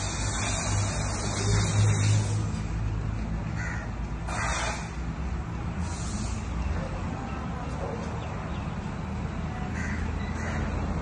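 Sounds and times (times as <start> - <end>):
crow cawing: 3.6 - 4.6, 9.8 - 10.7.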